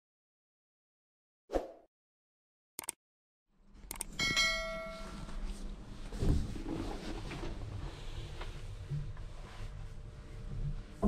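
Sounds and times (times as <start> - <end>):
notification bell ding: 4.2 - 5.3.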